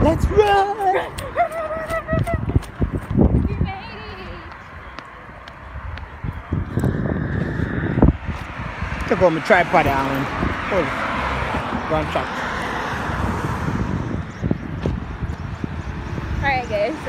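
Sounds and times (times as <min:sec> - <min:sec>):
wind and handling thumps on microphone: 0:01.9 - 0:09.2, 0:13.0 - 0:16.8.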